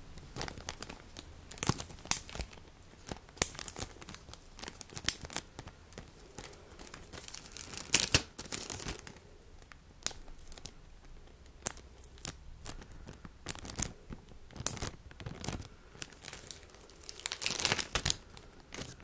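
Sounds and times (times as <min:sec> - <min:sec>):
packaging bags crinkling: 0:00.1 - 0:19.0.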